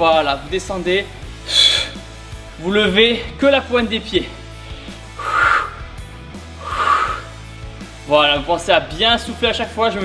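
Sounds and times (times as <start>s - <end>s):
background music: 0.0s - 10.0s
man breathing out hard: 1.4s - 2.1s, 5.1s - 6.0s, 6.6s - 7.4s.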